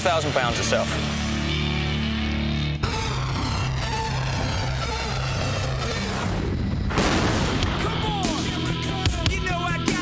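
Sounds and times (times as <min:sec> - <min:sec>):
music with repeating low beat: 0:01.4 - 0:06.8, 0:07.6 - 0:10.0.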